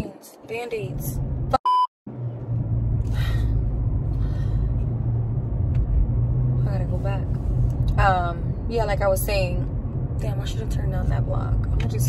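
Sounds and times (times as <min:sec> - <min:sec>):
woman's voice: 0:00.0 - 0:01.2, 0:06.6 - 0:12.0
car cabin rumble: 0:00.8 - 0:12.0.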